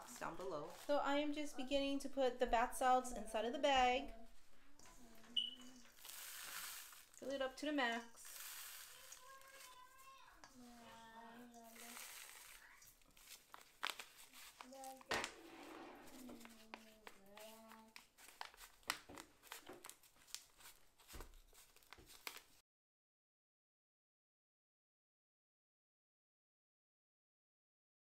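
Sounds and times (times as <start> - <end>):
paper bag crinkling: 0.0 - 1.0, 4.8 - 22.6
plastic gloves rustling: 0.0 - 22.6.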